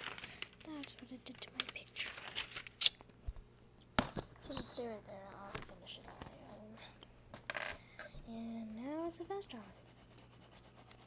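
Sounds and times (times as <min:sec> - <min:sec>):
paper rustling: 0:00.0 - 0:02.8.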